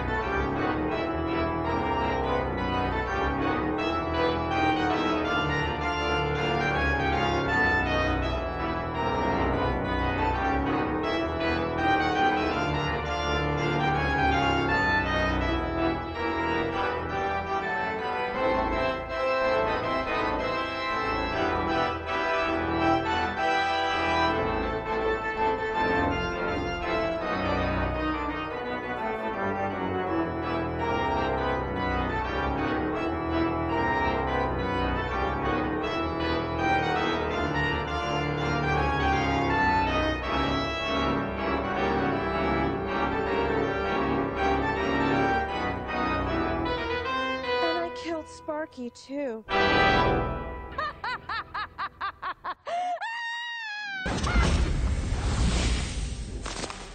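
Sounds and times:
organ playing chords: 0.0 - 52.3.

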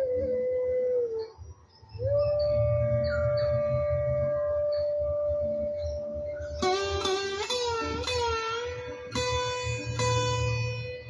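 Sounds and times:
faint high tinkling notes: 1.1 - 11.0.

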